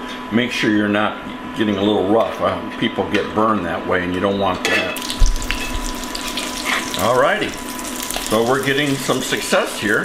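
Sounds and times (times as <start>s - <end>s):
fritters sizzling in hot oil: 5.0s - 10.0s.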